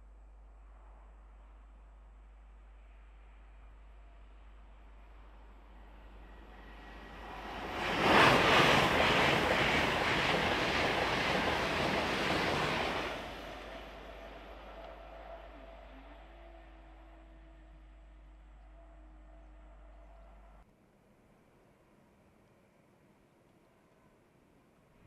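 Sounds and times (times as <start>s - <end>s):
high-speed train passing: 5.2s - 17.2s.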